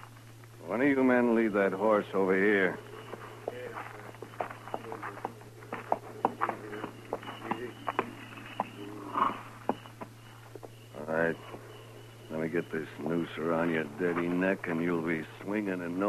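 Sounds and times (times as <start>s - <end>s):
steady low hum: 0.0s - 16.0s
shuffling: 1.5s - 10.7s
horse hoof clops: 2.8s - 10.8s.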